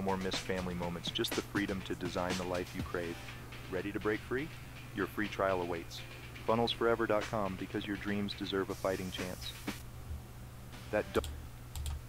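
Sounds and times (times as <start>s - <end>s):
computer clicks: 11.2s - 12.0s.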